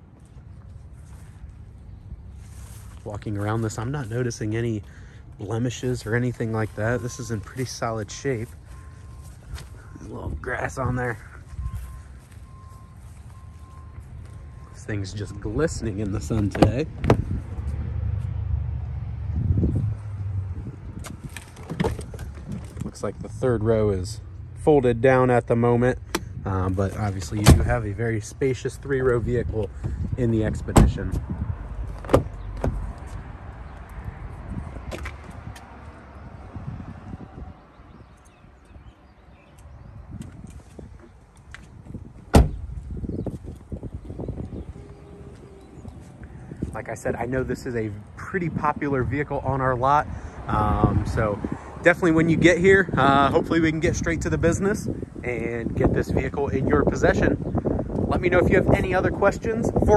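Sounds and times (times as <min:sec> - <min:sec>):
wind rumble: 0:08.5 - 0:24.6, 0:26.2 - 0:59.9
car door shutting: 0:21.0 - 0:22.9, 0:27.3 - 0:27.8, 0:30.7 - 0:31.0, 0:32.0 - 0:32.8, 0:42.3 - 0:42.8
car door latch click: 0:42.3 - 0:42.6.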